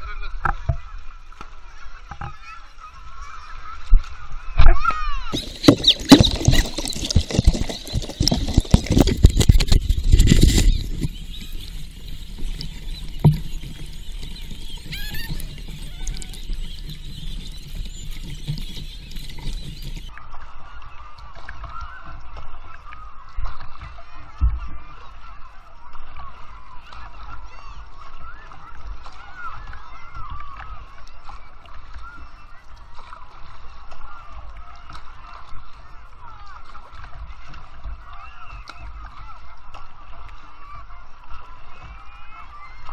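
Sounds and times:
water splashing against kayak: 0:00.0 - 0:42.9.

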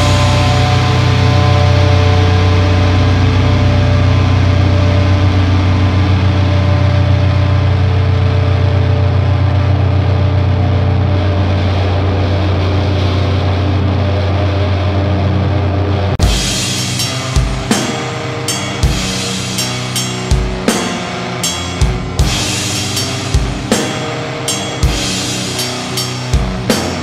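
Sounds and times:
higher held tones: 0:00.0 - 0:08.0, 0:16.2 - 0:27.0
loud low drone: 0:00.0 - 0:27.0.

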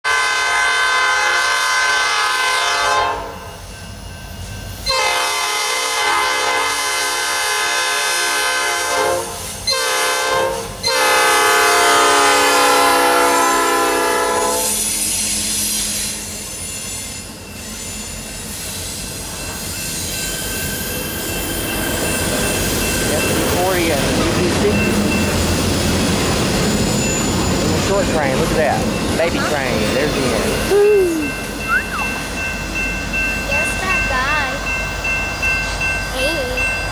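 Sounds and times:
locomotive air horn: 0:00.0 - 0:03.5, 0:04.9 - 0:15.0
train wheels clattering on rails: 0:14.6 - 0:36.9.

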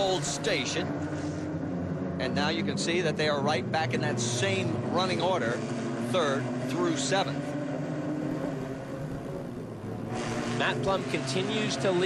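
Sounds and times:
race car engines: 0:00.0 - 0:12.0.

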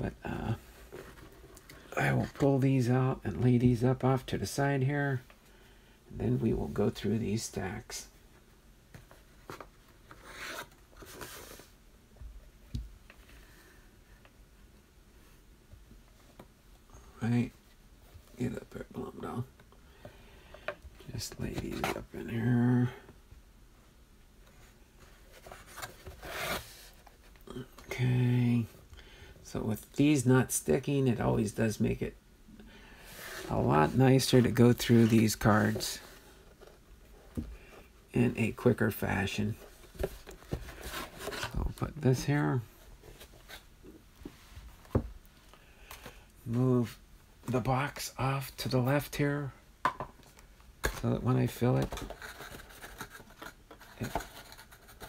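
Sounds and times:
person speaking: 0:00.0 - 0:01.1, 0:01.7 - 0:05.3, 0:06.1 - 0:08.2, 0:16.9 - 0:19.6, 0:21.0 - 0:23.2, 0:27.4 - 0:32.2, 0:33.2 - 0:36.4, 0:38.1 - 0:40.1, 0:41.0 - 0:42.8, 0:46.4 - 0:49.6, 0:50.8 - 0:52.4, 0:53.8 - 0:55.0
cards scraping against cardboard: 0:25.3 - 0:27.1, 0:51.8 - 0:55.0
cards handled in cardboard box: 0:38.5 - 0:41.8, 0:50.8 - 0:55.0.

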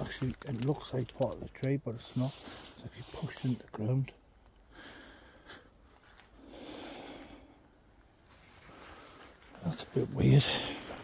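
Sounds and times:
rustling through leaf litter: 0:00.0 - 0:03.6.

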